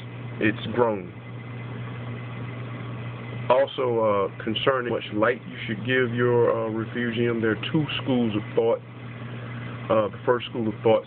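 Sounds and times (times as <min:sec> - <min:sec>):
pump low hum: 0:00.0 - 0:11.0.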